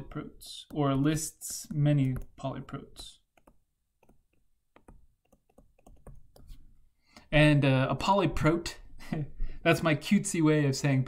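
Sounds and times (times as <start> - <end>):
stylus tapping on tablet screen: 0.7 - 2.5, 3.2 - 6.7.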